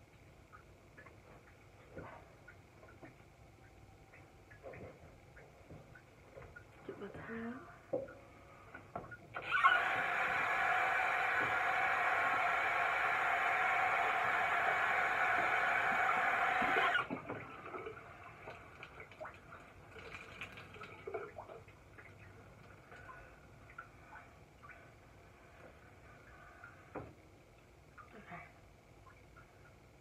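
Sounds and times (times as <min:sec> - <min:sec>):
tap water running into sink: 0:09.8 - 0:17.5.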